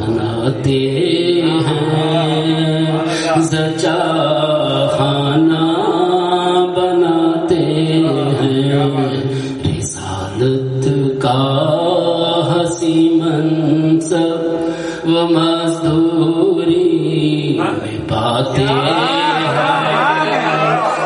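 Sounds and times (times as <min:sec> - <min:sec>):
man chanting into a microphone: 0:00.0 - 0:20.4.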